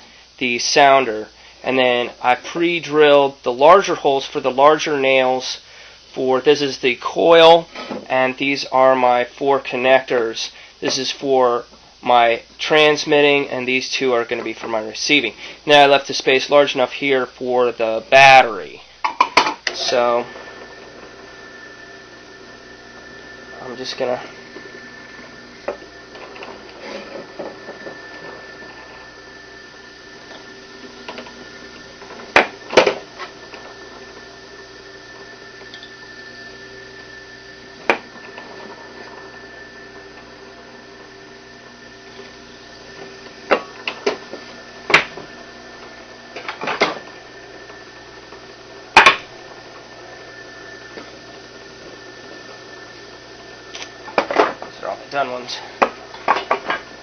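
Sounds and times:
drill press running: 0:14.1 - 0:57.0.

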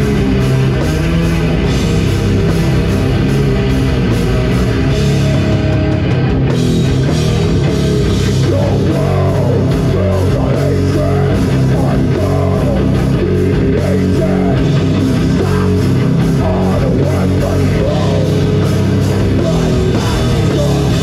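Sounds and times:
bass guitar: 0:00.0 - 0:21.0
distorted electric guitar: 0:00.0 - 0:21.0
drum kit: 0:00.0 - 0:21.0.

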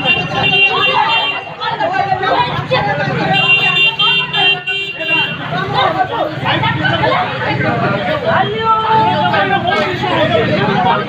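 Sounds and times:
people talking over one another: 0:00.0 - 0:11.0.

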